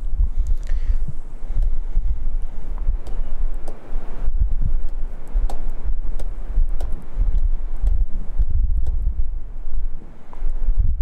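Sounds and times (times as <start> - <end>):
stylus light ticks: 4.8 - 9.1.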